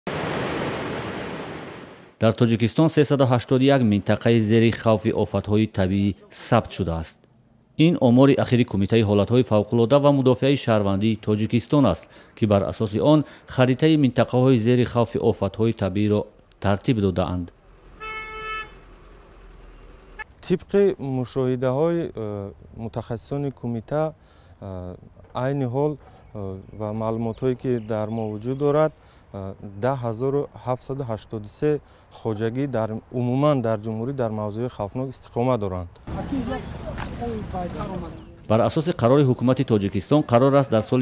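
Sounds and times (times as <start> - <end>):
water rushing over rocks: 0.1 - 2.2
faint street noise: 2.2 - 41.0
vehicle horn toot: 18.0 - 18.9.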